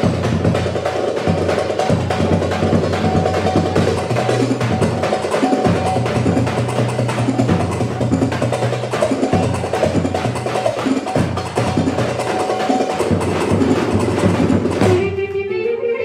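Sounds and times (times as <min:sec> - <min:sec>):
percussion beat: 0:00.0 - 0:15.4.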